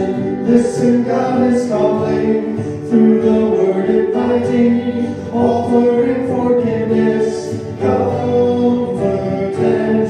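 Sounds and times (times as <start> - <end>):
acoustic guitar: 0.0 - 10.0
voices singing a hymn: 0.0 - 10.0.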